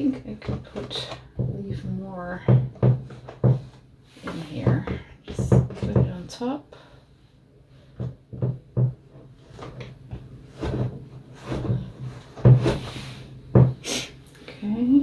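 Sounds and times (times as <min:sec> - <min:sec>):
wooden knocks and taps: 0:02.4 - 0:06.2, 0:08.0 - 0:11.8, 0:13.5 - 0:13.8.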